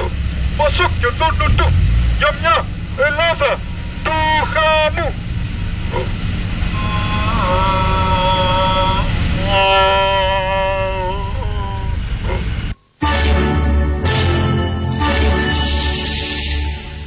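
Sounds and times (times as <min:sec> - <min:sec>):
car engine and street rumble: 0:00.0 - 0:12.8.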